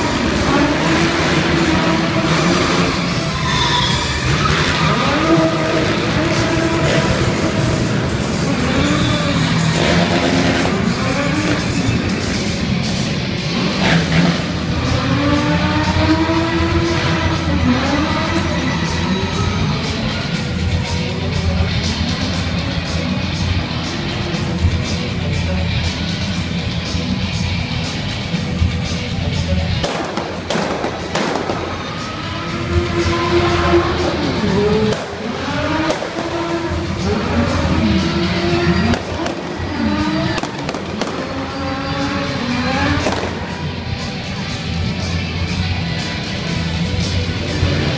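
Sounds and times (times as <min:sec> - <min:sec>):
car engine revving: 0:00.0 - 0:47.9
loud music: 0:00.0 - 0:47.9
sharp pops and bangs: 0:29.8 - 0:31.6.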